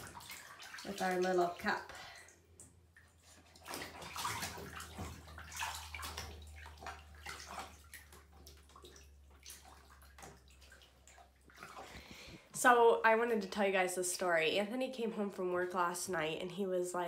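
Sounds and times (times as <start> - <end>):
bathwater sloshing and splashing: 0.0 - 14.4.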